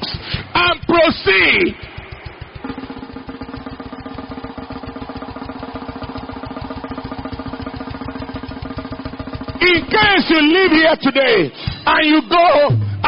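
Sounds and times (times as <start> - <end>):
fast drum roll: 0.0 - 13.0.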